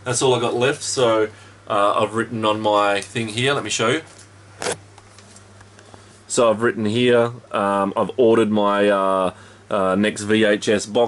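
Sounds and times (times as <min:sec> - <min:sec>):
clothes dryer humming: 0:00.0 - 0:11.0.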